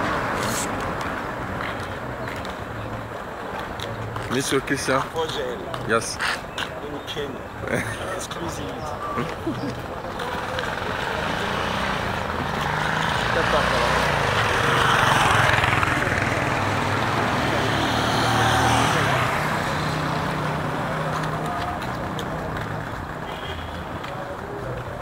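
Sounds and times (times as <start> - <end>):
vehicle passing by: 9.2 - 23.2.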